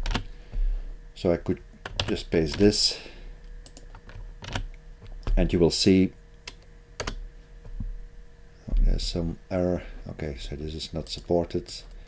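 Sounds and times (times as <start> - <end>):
faint steady hum: 0.0 - 12.0
computer keyboard key clicks: 3.6 - 4.7.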